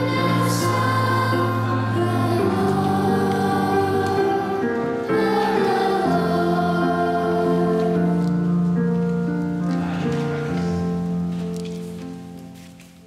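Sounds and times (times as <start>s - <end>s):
children's choir singing a hymn: 0.0s - 11.3s.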